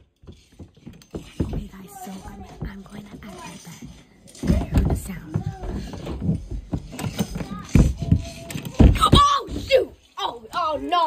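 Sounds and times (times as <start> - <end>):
faint muffled children's voices: 1.6 - 11.0.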